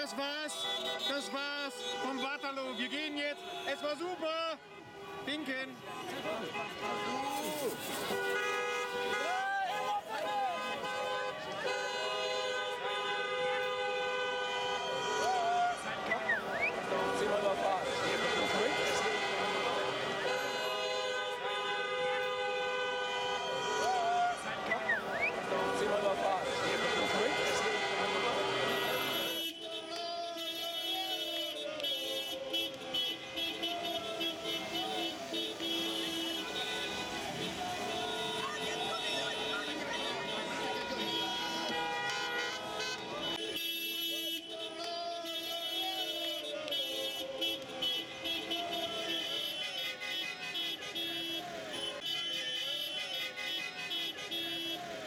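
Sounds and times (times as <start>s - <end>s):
car horns honking: 0.0s - 55.0s
voices: 14.7s - 21.6s, 23.3s - 55.0s.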